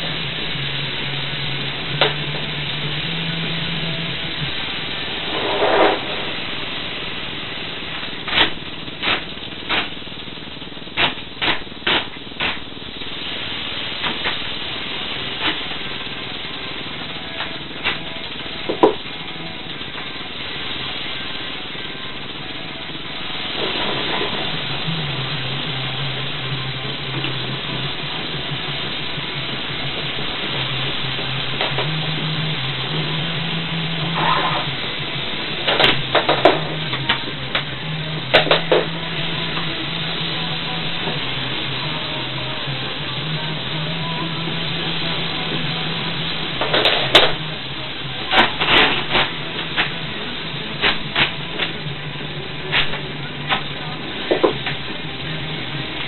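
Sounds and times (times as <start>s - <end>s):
rattlesnake rattling: 0.0s - 56.0s.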